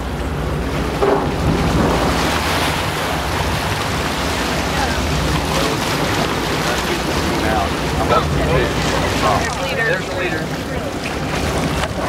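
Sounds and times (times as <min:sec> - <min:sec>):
wind buffeting microphone: 0:00.0 - 0:09.3
low engine hum: 0:00.0 - 0:12.0
water rushing along boat hull: 0:00.0 - 0:12.0.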